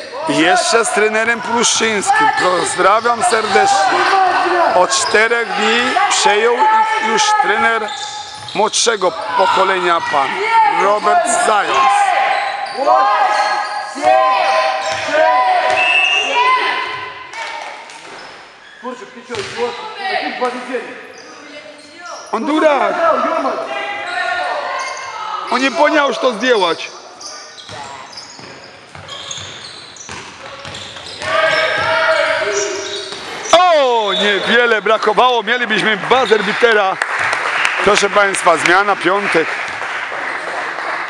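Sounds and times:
shoes squeaking on court: 2.2s - 6.0s, 7.6s - 17.1s, 17.8s - 22.6s, 24.0s - 35.2s
loud held shout: 10.3s - 17.0s
basketball bouncing: 19.3s - 19.6s, 28.4s - 32.0s.

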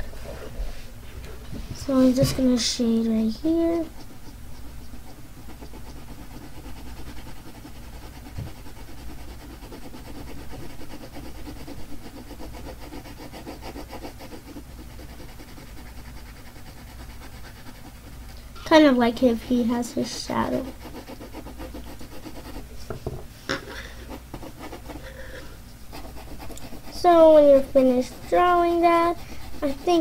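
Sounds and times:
pencil shading on paper: 2.0s - 22.7s, 24.0s - 30.0s.

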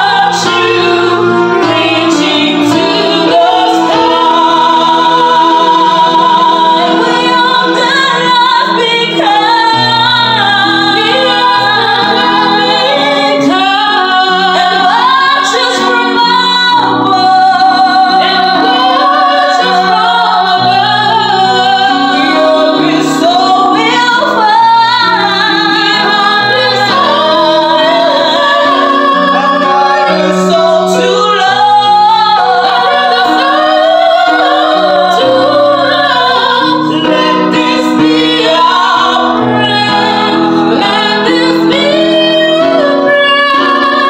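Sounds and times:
electronic keyboard: 0.0s - 44.0s
women singing ballad duet: 0.0s - 44.0s.

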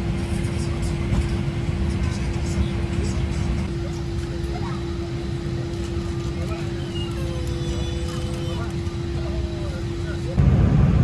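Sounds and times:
constant mid-pitched hum: 0.0s - 11.0s
engine and airflow rumble: 0.0s - 11.0s
faint voices: 2.0s - 10.4s.

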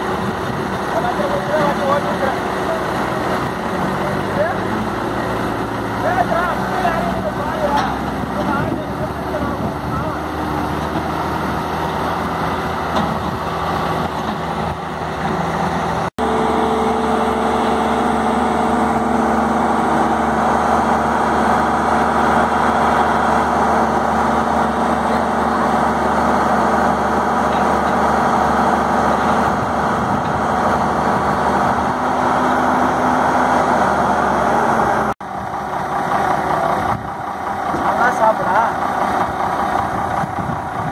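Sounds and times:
heavy diesel engine running: 0.0s - 40.9s.

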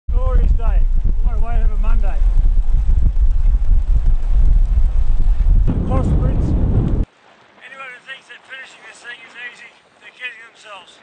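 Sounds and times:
wind buffeting microphone: 0.1s - 7.1s.

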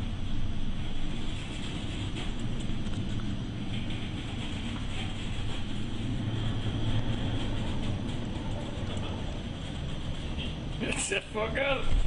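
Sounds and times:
ship engine rumble: 0.0s - 12.0s
wind: 0.0s - 12.0s.

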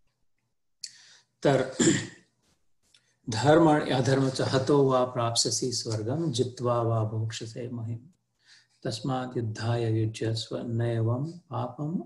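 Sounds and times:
man clearing his throat: 1.6s - 2.2s.

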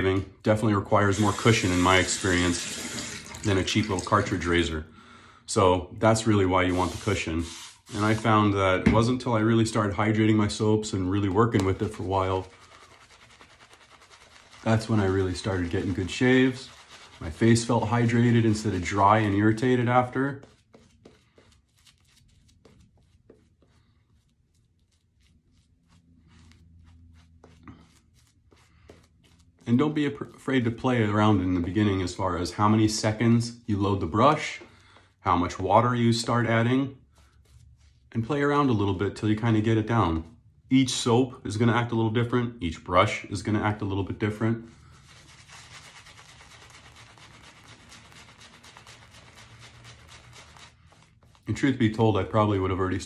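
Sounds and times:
shaving brush strokes on face: 1.0s - 3.2s, 6.6s - 8.4s, 11.7s - 29.9s, 45.0s - 52.5s.

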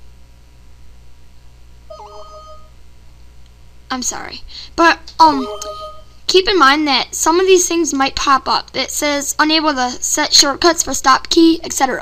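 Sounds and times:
low hum: 0.0s - 7.4s
system alert chime: 1.9s - 2.7s, 5.2s - 6.2s.

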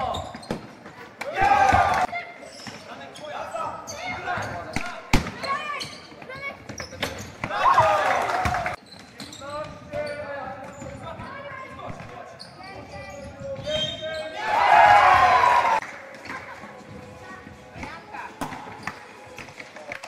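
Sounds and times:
loud shouts: 1.2s - 2.1s, 7.5s - 8.8s, 14.3s - 15.8s.

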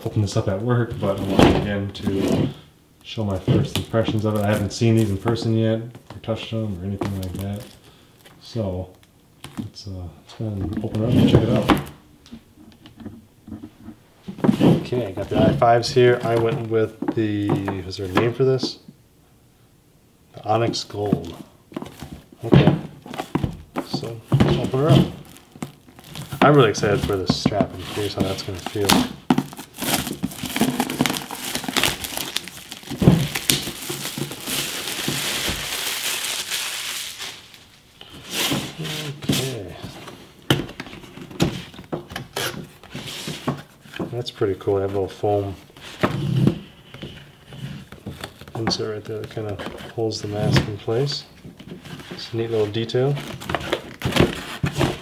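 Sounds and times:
plastic wrap crinkling: 3.3s - 5.5s, 6.2s - 9.2s, 20.8s - 44.2s, 44.9s - 55.0s.

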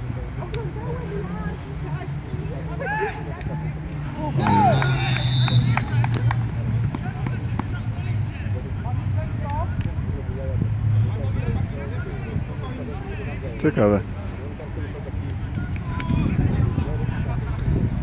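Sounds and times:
players shouting: 2.5s - 6.3s, 15.3s - 17.7s.

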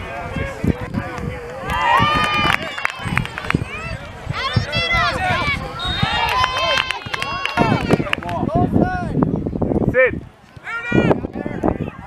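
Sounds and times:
spectators shouting: 1.6s - 8.3s.

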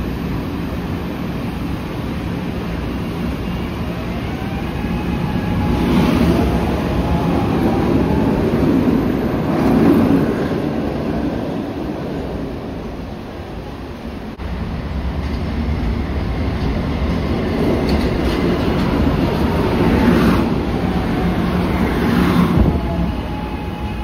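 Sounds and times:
subway train rumble: 0.0s - 24.0s.

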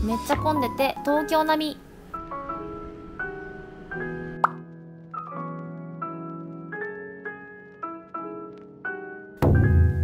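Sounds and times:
light keyboard music: 0.0s - 10.0s.

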